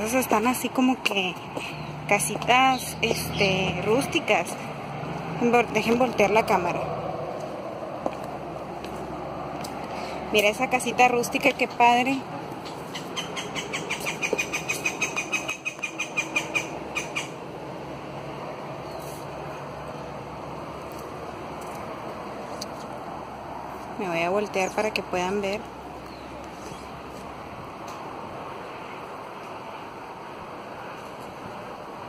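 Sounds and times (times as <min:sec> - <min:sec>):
outdoor background noise: 0:00.0 - 0:32.0.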